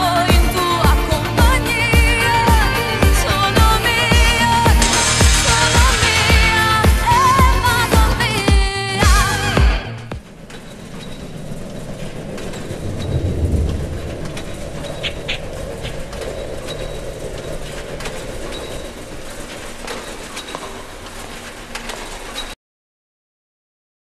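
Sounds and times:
background ambience: 0.0s - 22.6s.

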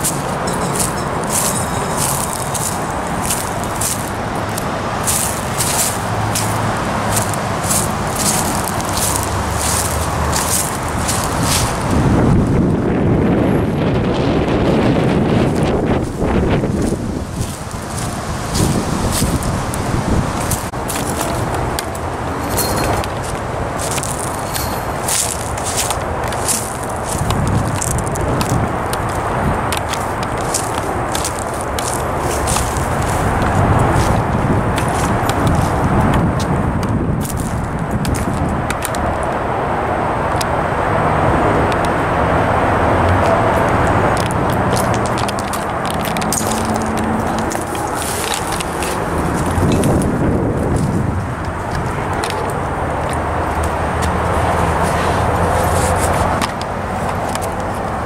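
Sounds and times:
footsteps on twigs and debris: 0.0s - 12.7s, 15.4s - 39.4s, 43.1s - 58.0s
road traffic rumbling: 0.0s - 58.0s.

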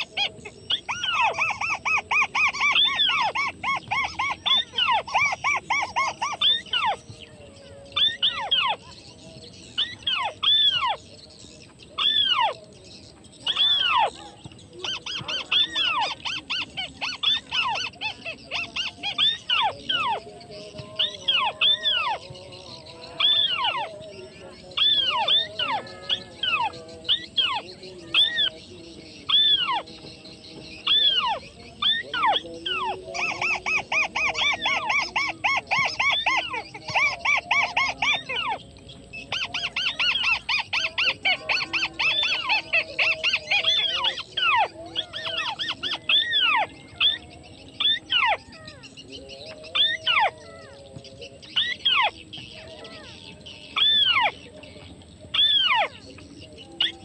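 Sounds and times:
crake calling: 0.0s - 57.0s.

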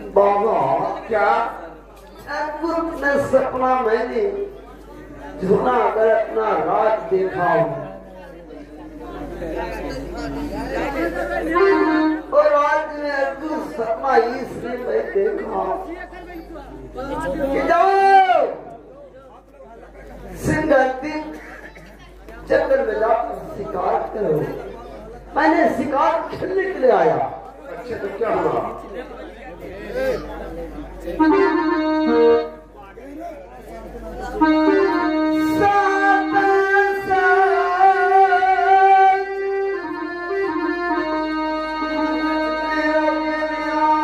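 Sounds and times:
man speaking through microphone: 0.0s - 39.4s
electronic keyboard melody: 11.0s - 12.3s, 31.2s - 32.8s, 34.2s - 44.0s.

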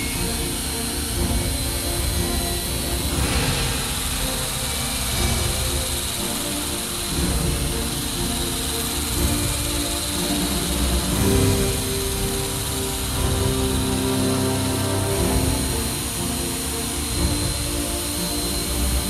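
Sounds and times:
angle grinder whining on steel: 0.0s - 19.0s
background music: 0.0s - 19.0s.

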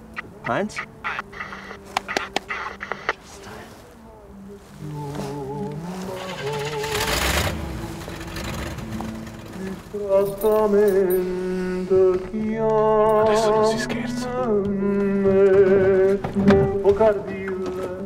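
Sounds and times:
sharp clicks: 0.1s - 3.2s
car passing: 5.8s - 10.7s.

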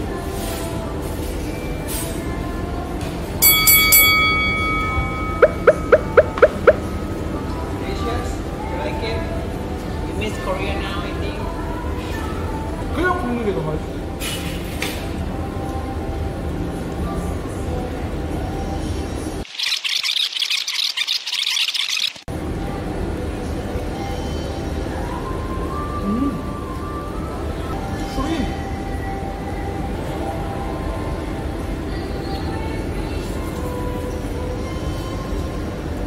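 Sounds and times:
soft background music: 0.0s - 19.5s, 22.3s - 36.0s
bright bell-like chime: 3.4s - 6.4s.

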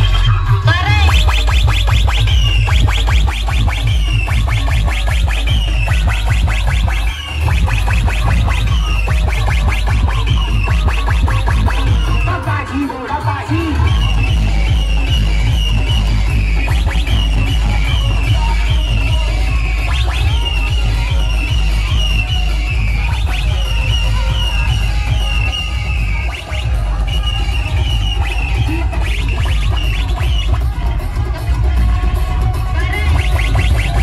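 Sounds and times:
loud electronic dance music: 0.0s - 34.0s.

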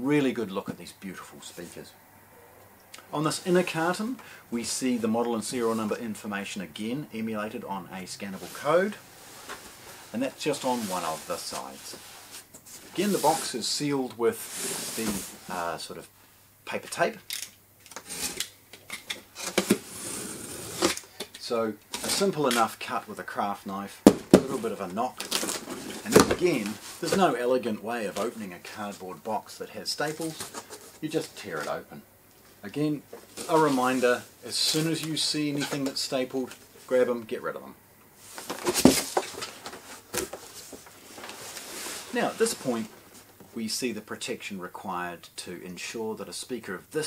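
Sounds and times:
rustling cardboard and plastic bag: 8.3s - 15.8s, 24.0s - 31.9s, 32.6s - 37.0s, 38.2s - 43.4s
craft knife scraping through tape: 17.9s - 18.5s, 19.4s - 21.0s.

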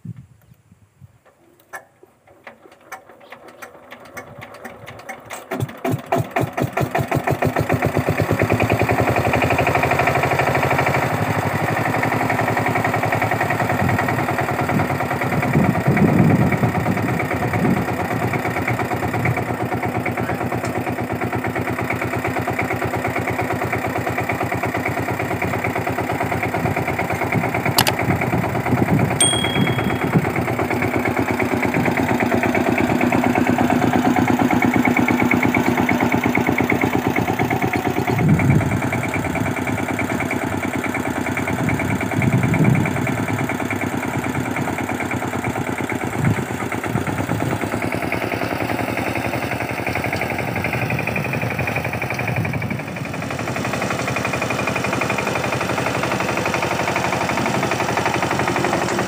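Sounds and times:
diesel engine starting and running: 1.6s - 59.0s.

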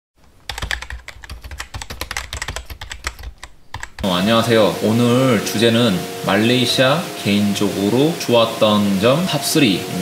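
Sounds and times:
keyboard key clicks: 0.5s - 4.0s.

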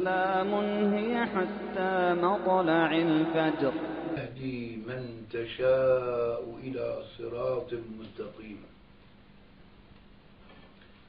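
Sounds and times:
low steady hum: 0.0s - 11.0s
recording hiss: 0.0s - 11.0s.

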